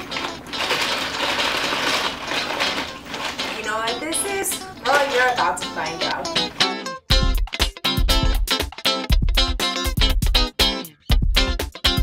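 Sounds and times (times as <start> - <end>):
plastic pots rattling in pouch: 0.0 - 5.4.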